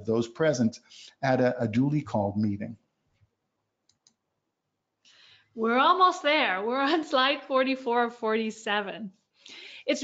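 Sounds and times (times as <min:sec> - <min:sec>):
computer mouse clicks: 0:03.8 - 0:04.2.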